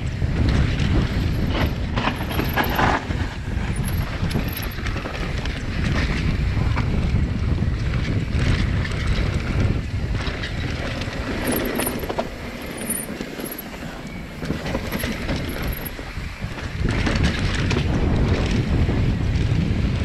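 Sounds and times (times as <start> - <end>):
bike rattling over bumps: 0.0 - 20.0
bike tyres on dirt: 0.0 - 20.0
wind buffeting microphone: 0.0 - 20.0.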